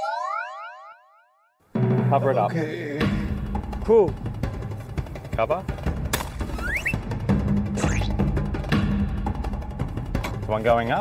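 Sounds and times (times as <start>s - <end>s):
background music: 1.6s - 11.0s.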